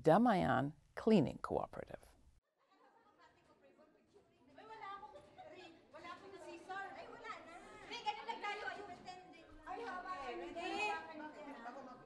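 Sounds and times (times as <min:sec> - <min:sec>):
faint chatter of people: 0:02.5 - 0:12.0.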